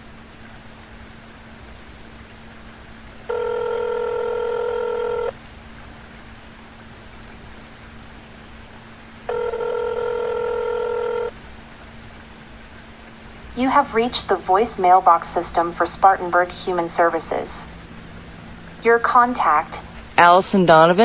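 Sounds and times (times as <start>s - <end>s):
faint steady hum: 0.0s - 21.0s
telephone ringback tone: 3.3s - 5.3s, 9.3s - 11.3s.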